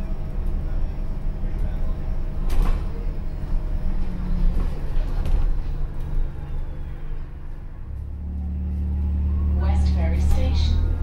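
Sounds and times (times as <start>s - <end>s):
bus drivetrain and road rumble: 0.0s - 11.0s.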